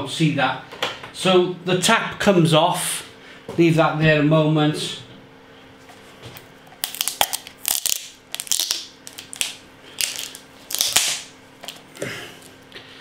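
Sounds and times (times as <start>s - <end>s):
plastic keg crunching and crackling: 6.7s - 12.1s.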